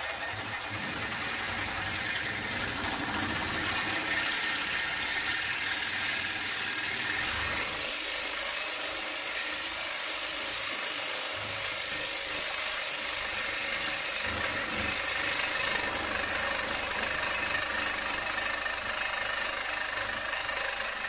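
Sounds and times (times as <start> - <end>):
reciprocating saw cutting metal pipe: 0.0 - 21.0.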